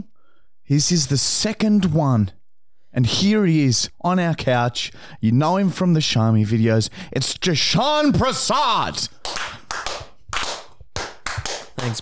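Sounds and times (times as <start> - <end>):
people clapping: 9.2 - 12.0.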